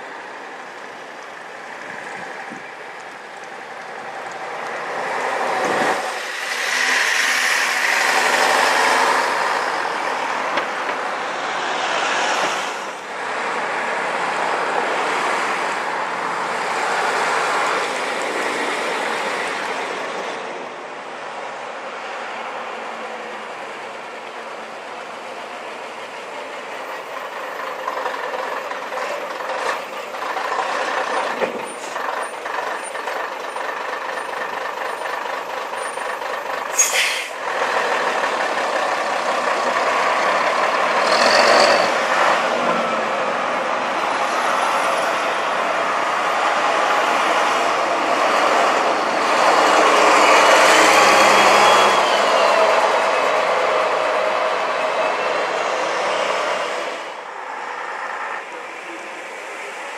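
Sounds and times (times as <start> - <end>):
bus diesel engines passing: 0.0 - 59.9
sharp hiss of air: 36.7 - 37.4.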